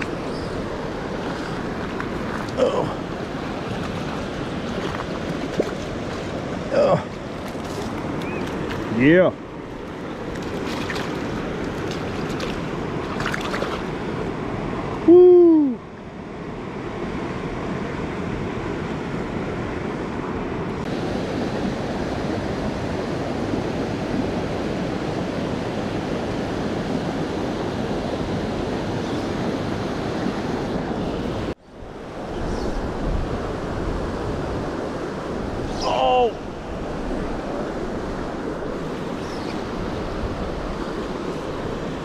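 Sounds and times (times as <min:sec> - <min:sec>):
shallow river rushing: 0:00.0 - 0:42.0
person whooping: 0:15.0 - 0:15.8
wind on microphone: 0:20.8 - 0:42.0.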